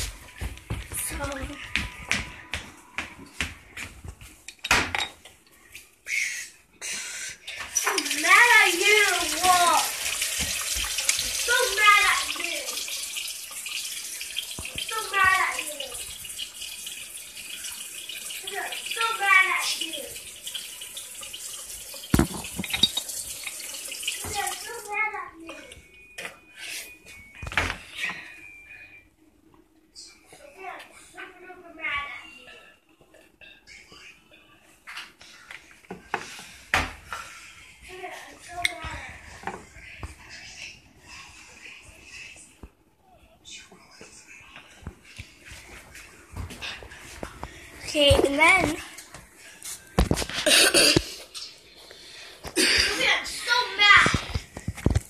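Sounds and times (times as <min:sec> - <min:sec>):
child's voice: 0:00.9 - 0:01.8, 0:07.9 - 0:10.0, 0:11.3 - 0:12.8, 0:14.8 - 0:16.1, 0:18.4 - 0:20.2, 0:24.2 - 0:25.8, 0:30.4 - 0:32.7, 0:37.9 - 0:39.4, 0:47.8 - 0:48.9, 0:52.6 - 0:54.4
tap running into sink: 0:21.5 - 0:24.6.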